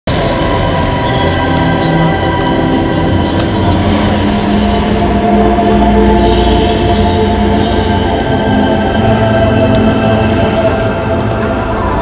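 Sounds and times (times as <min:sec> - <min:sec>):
deep electronic drones: 0:00.1 - 0:12.0.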